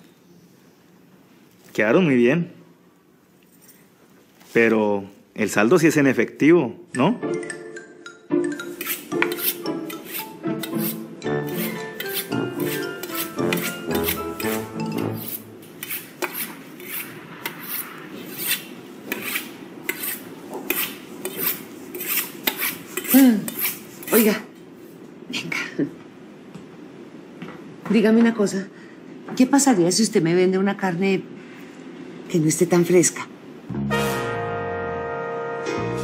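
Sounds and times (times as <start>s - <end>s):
music: 6.9s - 15.4s, 33.7s - 36.0s
knife scraping on sharpening steel: 8.6s - 24.4s.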